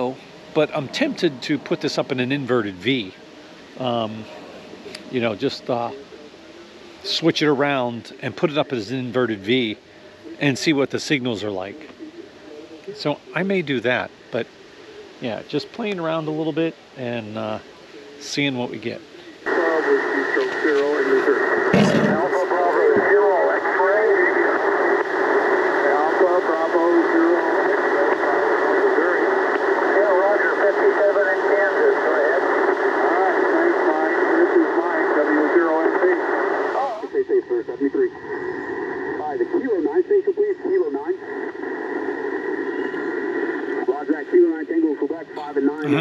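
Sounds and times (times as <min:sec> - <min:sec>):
radio voices from speaker: 0:00.0 - 0:46.0
weak noisy radio voice: 0:00.0 - 0:46.0.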